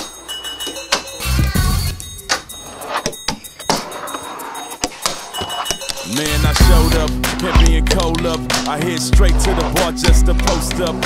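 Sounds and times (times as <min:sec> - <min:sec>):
fingerboard wheels rolling on wood: 0:02.4 - 0:11.0.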